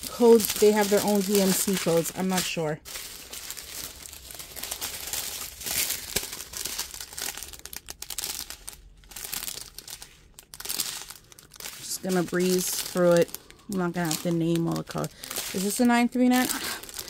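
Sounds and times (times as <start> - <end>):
plastic packaging crinkling: 0.0 - 17.0.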